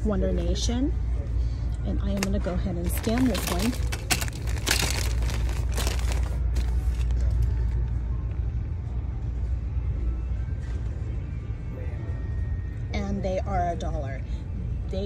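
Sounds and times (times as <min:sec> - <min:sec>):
faint background music: 0:00.0 - 0:15.0
store hum: 0:00.0 - 0:15.0
plastic packaging rustling: 0:02.2 - 0:07.6.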